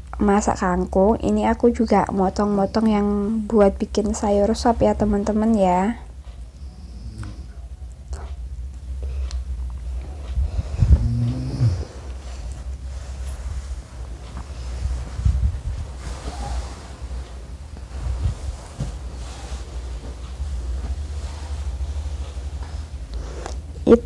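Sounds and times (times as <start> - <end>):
steady low rumble: 0.0 - 24.0
short low-pitched hum: 9.8 - 14.2.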